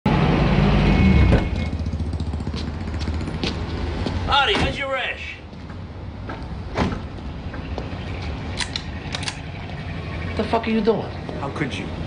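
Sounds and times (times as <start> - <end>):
vehicle engine rumbling: 0.1 - 12.0.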